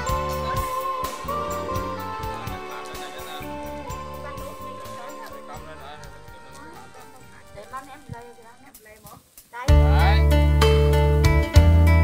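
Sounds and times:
people talking: 0.0s - 10.3s
soft music: 0.0s - 12.0s.

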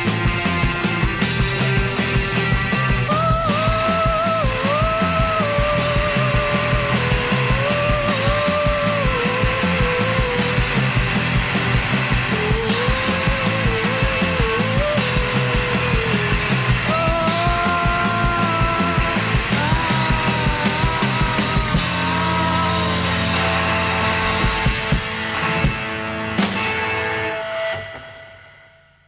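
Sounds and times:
drum kit beat: 0.0s - 26.8s
distorted electric guitars: 0.0s - 29.0s.

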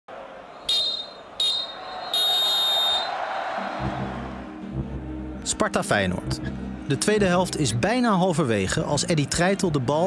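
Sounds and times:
referee's whistle blasts: 0.6s - 3.1s
low steady music: 3.6s - 10.0s.

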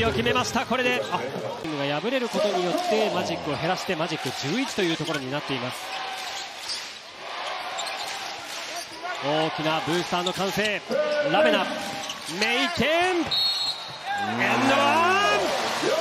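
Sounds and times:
arena crowd noise: 0.0s - 16.0s
sneakers squeaking: 5.9s - 9.1s, 10.2s - 14.2s
referee's whistle: 13.2s - 14.2s.

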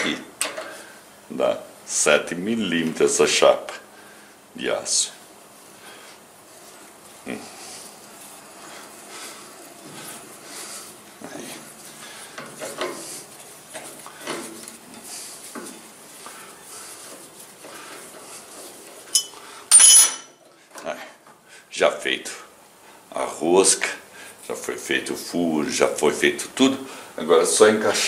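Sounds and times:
metal wrench clanking on bench: 19.1s - 20.3s.

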